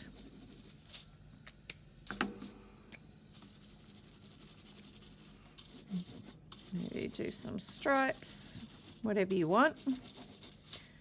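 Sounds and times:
marker scratching on foil: 0.0s - 1.1s, 3.3s - 11.0s.

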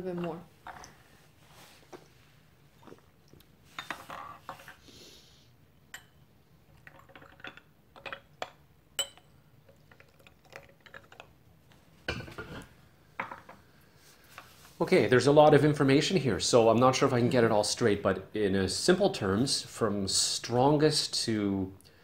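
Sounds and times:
porcelain lids and cups clinking: 6.8s - 9.3s.

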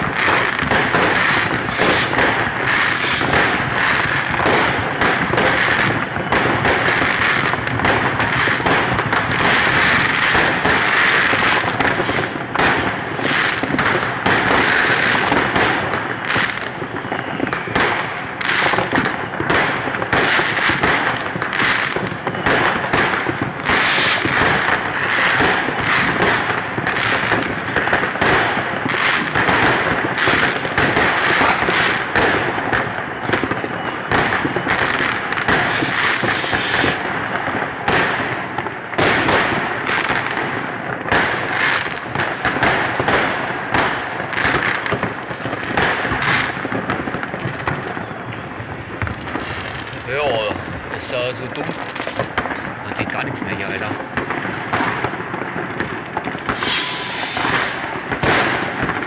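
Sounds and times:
fireworks crackling and banging: 0.0s - 59.0s.

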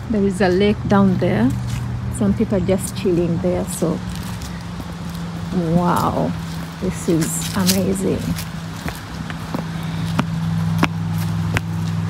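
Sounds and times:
footsteps on paved path: 0.0s - 12.0s
steady low hum: 0.0s - 12.0s.

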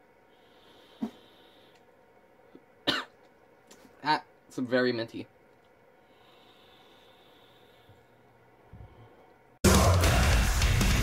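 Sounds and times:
person exhaling: 0.4s - 1.8s
short cough: 2.8s - 3.2s.

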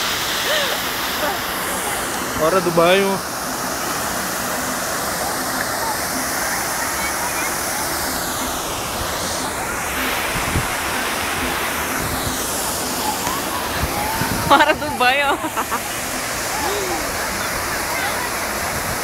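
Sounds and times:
fountain water rushing and splashing: 0.0s - 19.0s.

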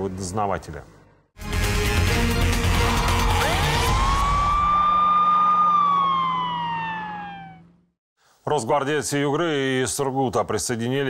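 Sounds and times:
siren wail sound effect: 2.6s - 7.8s.

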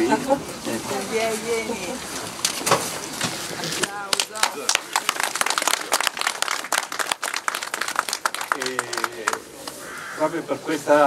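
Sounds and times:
group applauding: 3.8s - 9.8s.

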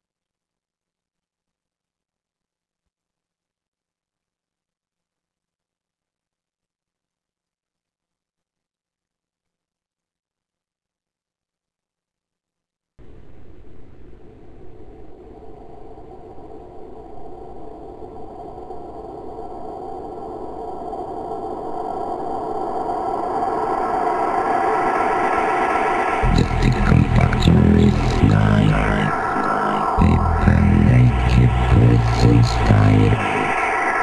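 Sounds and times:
droning synth build: 26.2s - 34.0s
heavy bass and kick drum beat: 26.3s - 29.0s, 30.0s - 33.3s.

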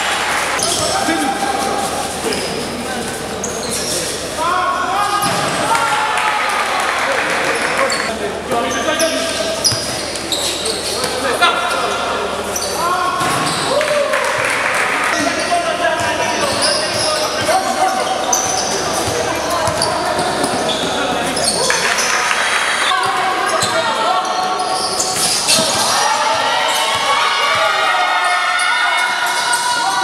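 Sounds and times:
basketball bouncing on hard court: 19.0s - 20.3s.

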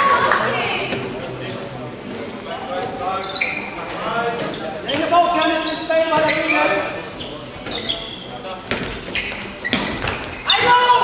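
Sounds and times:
ball bouncing on hall floor: 7.6s - 11.0s
players shouting: 10.4s - 11.0s.

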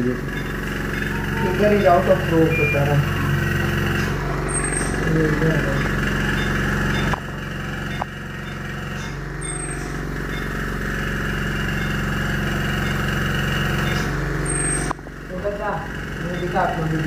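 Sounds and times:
electrical equipment humming: 0.0s - 17.0s
short high-pitched tones: 0.3s - 3.6s.

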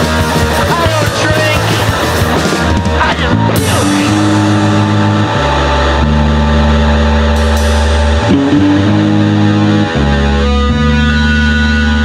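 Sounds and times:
punk band playing: 0.0s - 12.0s.

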